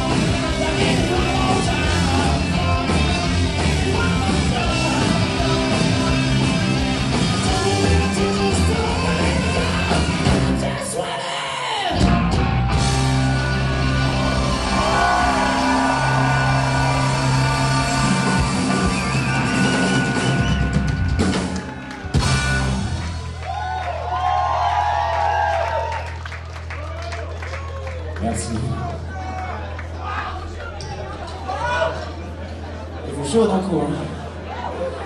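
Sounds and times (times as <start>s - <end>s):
distorted electric guitars: 0.0s - 10.8s, 11.9s - 23.4s
bass guitar: 0.0s - 11.0s, 11.9s - 32.6s
drums: 0.0s - 26.5s.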